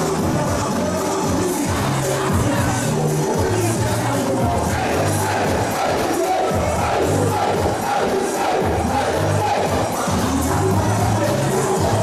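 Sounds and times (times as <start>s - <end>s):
crowd shouting and cheering: 0.0s - 12.0s
loud dance music: 0.0s - 12.0s.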